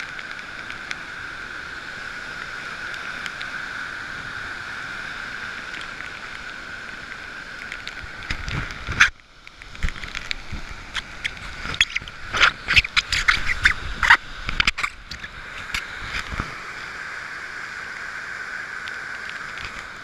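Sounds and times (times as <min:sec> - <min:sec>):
mountain stream rushing: 0:00.0 - 0:20.0
rain: 0:00.0 - 0:20.0
wind: 0:00.0 - 0:20.0.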